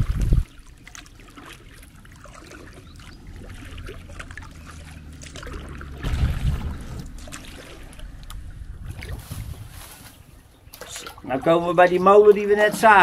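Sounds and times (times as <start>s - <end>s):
wind on microphone: 0.0s - 0.6s, 5.8s - 10.5s
paddle strokes in water: 0.0s - 10.2s.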